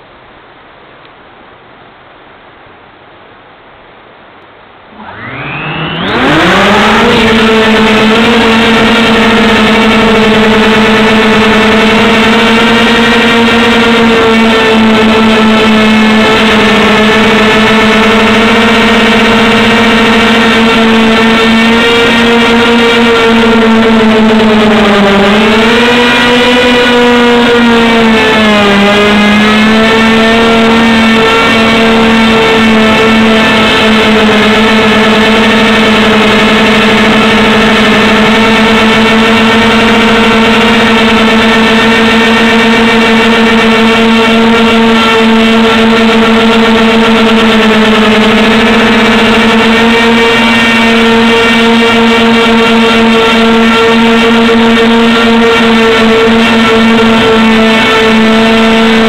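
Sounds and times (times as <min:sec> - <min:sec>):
drone motors and propellers whining: 0:04.6 - 0:59.0.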